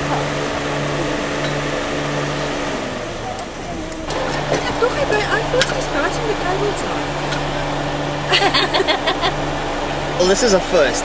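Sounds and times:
car engine idling: 0.0s - 11.0s
muffled voices: 0.0s - 11.0s.

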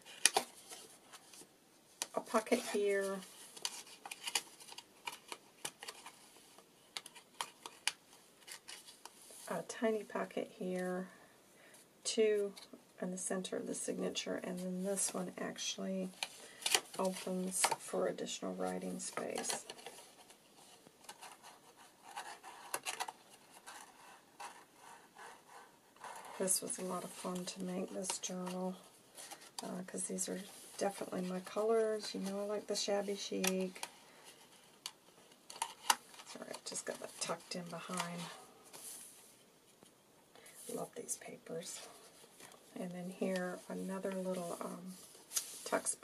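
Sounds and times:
paper clicks and rustles: 0.0s - 9.2s, 19.1s - 25.3s
paper rustling and scraping: 18.6s - 29.6s.

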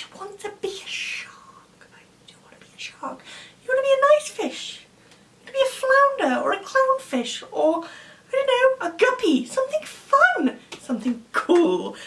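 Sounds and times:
woman speaking with whispery hiss: 0.0s - 12.0s.

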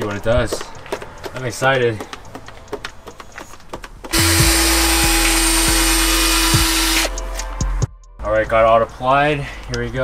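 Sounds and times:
cordless drill whining: 4.1s - 7.1s.

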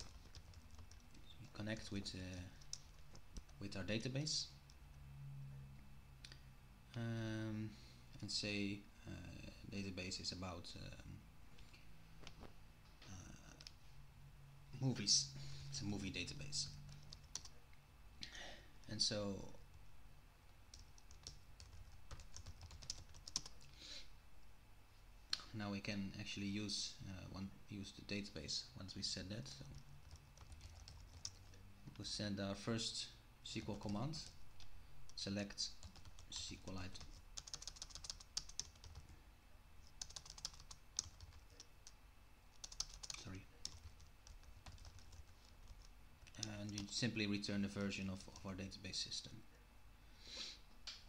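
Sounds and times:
computer keyboard typing: 0.0s - 3.6s, 16.7s - 17.5s, 20.7s - 23.6s, 29.6s - 31.6s, 35.1s - 39.1s, 39.9s - 47.0s.

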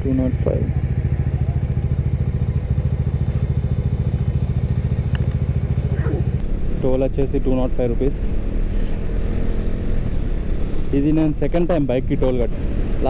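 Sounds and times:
motorcycle engine idling: 0.0s - 13.0s.

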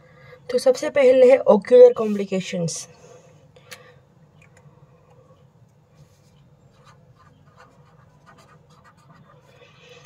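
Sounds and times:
low steady hum: 0.0s - 10.0s
pen scratching on paper: 6.7s - 9.6s.

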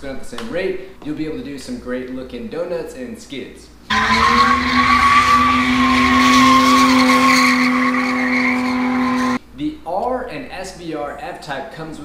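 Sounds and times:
car engine revving high: 3.9s - 9.4s
tyres squealing: 3.9s - 9.4s.

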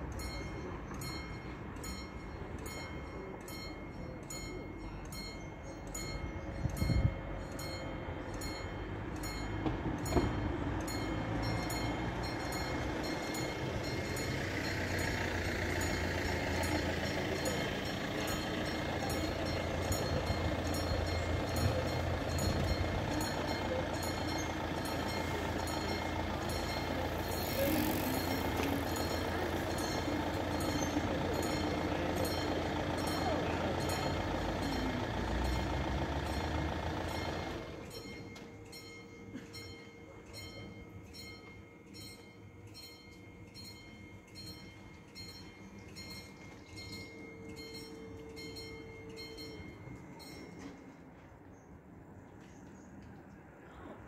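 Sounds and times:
level-crossing bell ringing: 0.0s - 51.1s.

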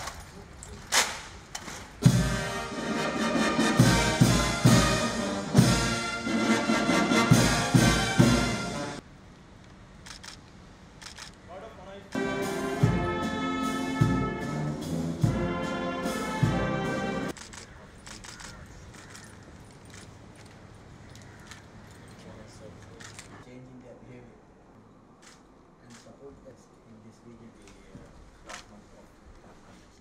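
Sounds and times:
light metallic jingles: 17.9s - 23.4s.

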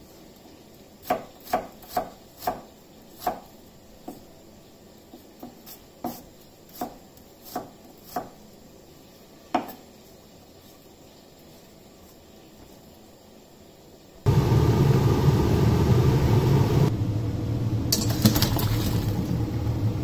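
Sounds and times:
knife chopping on cutting board: 1.0s - 3.5s, 5.4s - 8.4s.

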